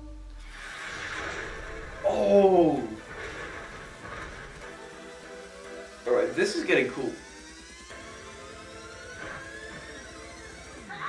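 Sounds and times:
trailer music: 0.4s - 10.9s
noisy swell: 0.4s - 11.0s.

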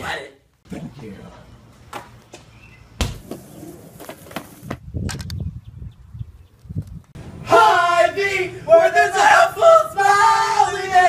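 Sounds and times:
basketball striking hoop: 3.0s - 3.4s.

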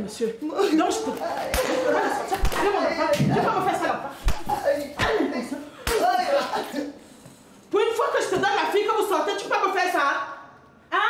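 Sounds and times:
open-hand slaps: 1.4s - 3.3s, 4.2s - 4.6s, 5.8s - 6.1s.

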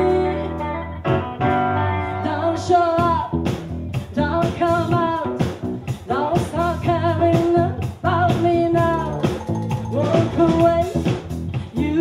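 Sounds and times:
bass guitar: 0.0s - 12.0s
electric guitar: 0.0s - 12.0s
woman singing lead vocal: 0.0s - 12.0s
drum kit beat: 2.9s - 12.0s.

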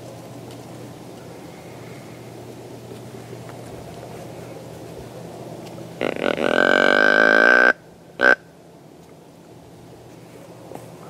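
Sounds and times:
deer grunt call: 6.0s - 8.4s.

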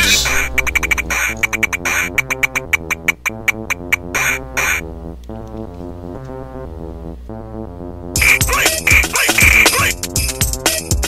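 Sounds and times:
choppy synth stabs: 0.0s - 5.2s, 8.2s - 11.0s.

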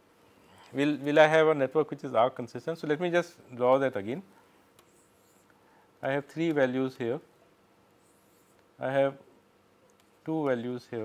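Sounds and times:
stylus scratching on pen tablet: 4.8s - 5.5s, 8.0s - 8.6s.

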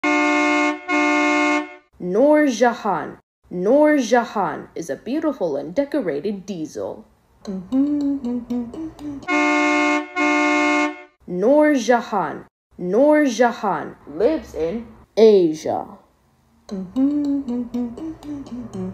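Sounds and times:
locomotive horn blasts: 0.0s - 1.9s, 9.2s - 11.2s.

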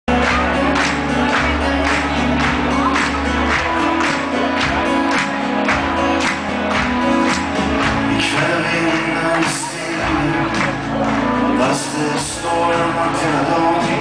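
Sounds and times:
rock band playing loudly: 0.1s - 14.0s.

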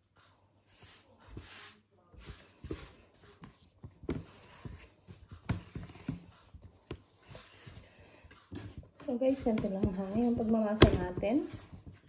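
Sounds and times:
dough thumping and slapping on board: 1.4s - 12.0s.

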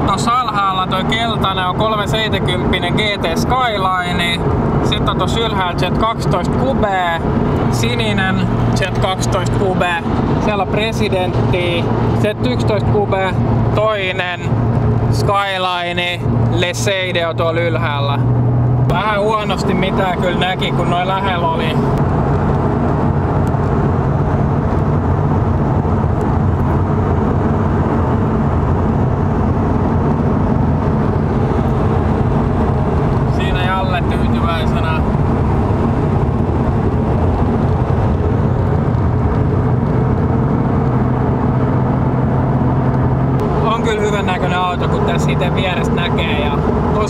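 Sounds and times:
car engine drone: 0.0s - 47.0s
tyre and wind noise: 21.8s - 43.6s.

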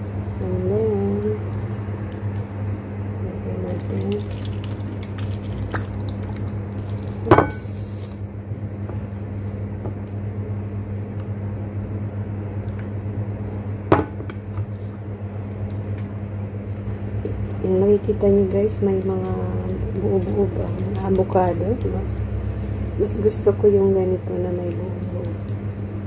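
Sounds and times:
steady low hum: 0.0s - 26.0s
plastic rustle: 3.7s - 7.3s, 19.1s - 22.8s.

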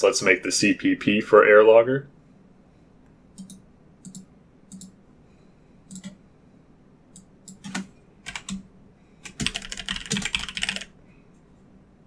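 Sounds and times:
computer mouse clicking: 3.3s - 5.0s, 5.9s - 6.2s, 7.1s - 8.6s.

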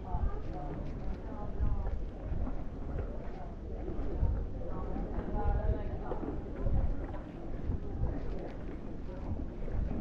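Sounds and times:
indistinct talk of people: 0.0s - 10.0s
wind buffeting microphone: 0.0s - 10.0s.

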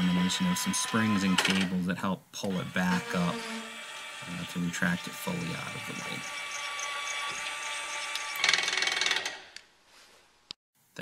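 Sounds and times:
electric actuator whining: 2.4s - 9.4s
fast rattling clicking: 6.2s - 9.4s.

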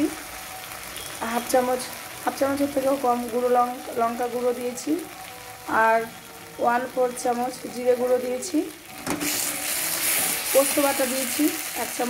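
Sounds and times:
paste sizzling in a pan: 0.0s - 12.0s.

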